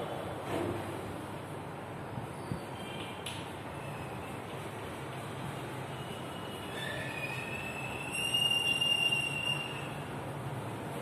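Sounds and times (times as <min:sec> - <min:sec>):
chalk squeaking on a blackboard: 0:05.9 - 0:10.1.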